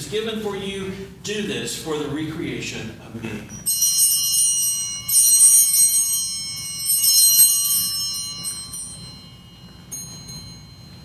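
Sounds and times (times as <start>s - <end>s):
altar bells ringing: 3.5s - 11.0s.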